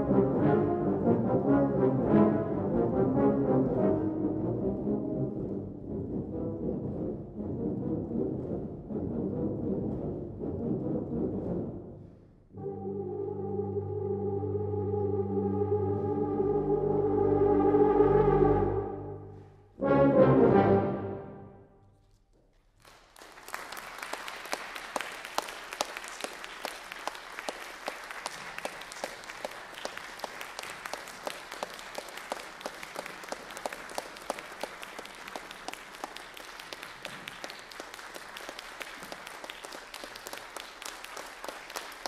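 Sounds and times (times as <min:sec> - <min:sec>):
audience applause: 0:22.8 - 0:42.0.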